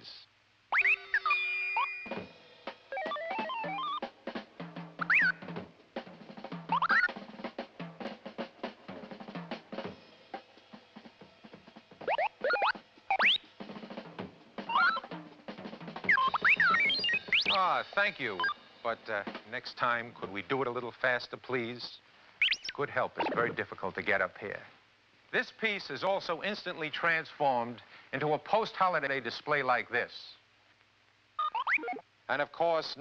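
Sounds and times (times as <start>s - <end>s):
robot chirps and whistles: 0.7s - 2.2s, 2.9s - 4.0s, 5.0s - 5.4s, 6.7s - 7.1s, 12.1s - 13.5s, 14.7s - 15.1s, 16.1s - 18.6s, 22.4s - 23.6s, 31.4s - 32.0s
music with drums: 0.8s - 20.7s.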